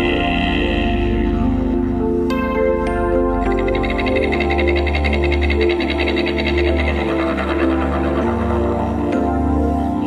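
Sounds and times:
ambient music with low drone: 0.0s - 10.0s.

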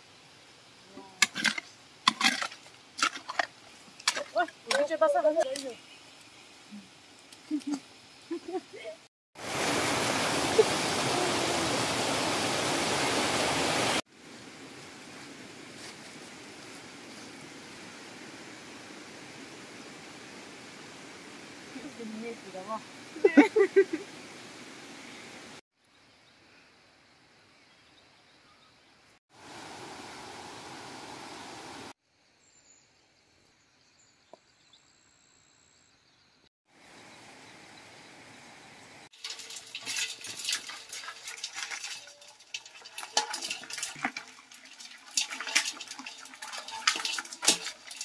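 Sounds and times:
outdoor hiss: 0.0s - 27.9s, 29.3s - 40.9s
crabs clattering in metal basin: 1.2s - 5.0s, 39.2s - 48.0s.

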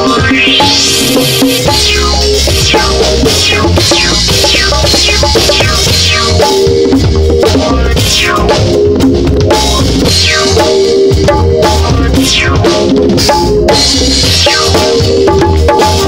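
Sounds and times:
bongos played by hand: 0.0s - 16.0s
live band playing loudly: 0.0s - 16.0s.

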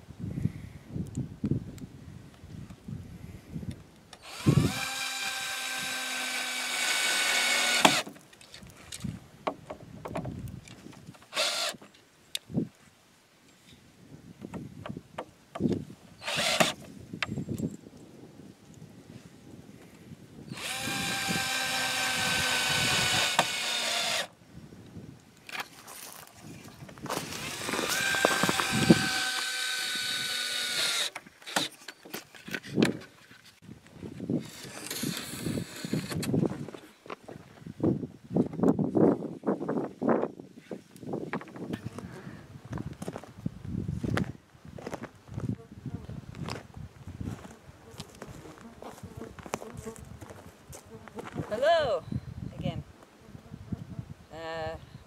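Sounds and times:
cordless drill driving into wood: 4.2s - 8.2s, 11.3s - 11.9s, 15.6s - 16.9s, 20.5s - 24.3s, 27.1s - 33.0s, 34.4s - 36.4s.

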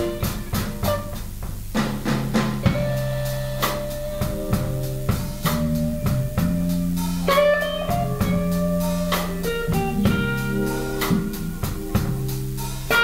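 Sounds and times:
electric guitars: 0.0s - 1.2s, 2.6s - 13.0s
drum kit beat: 0.0s - 13.0s.

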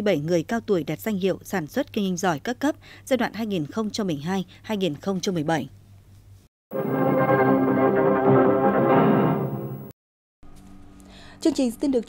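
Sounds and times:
news title jingle music: 6.7s - 10.0s.

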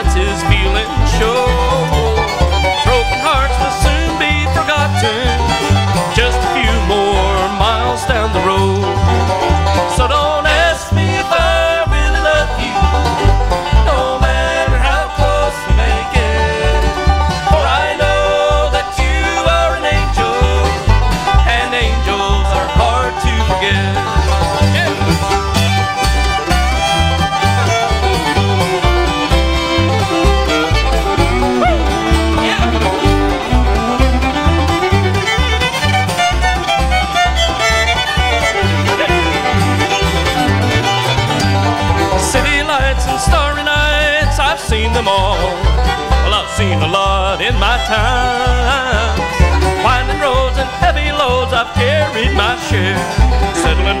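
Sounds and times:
fast banjo: 0.0s - 54.0s
fiddle: 0.0s - 54.0s
guitar: 0.0s - 54.0s
steady bass beat: 0.0s - 54.0s.

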